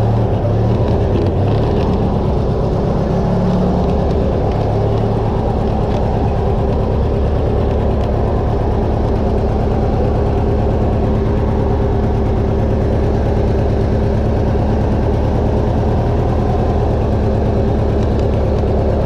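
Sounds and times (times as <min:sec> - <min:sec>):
lawn tractor engine running: 0:00.0 - 0:19.0.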